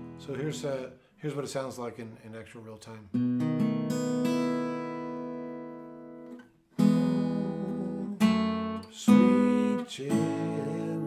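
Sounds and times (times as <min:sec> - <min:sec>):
fingerstyle acoustic guitar: 0:00.0 - 0:00.8, 0:03.1 - 0:11.0.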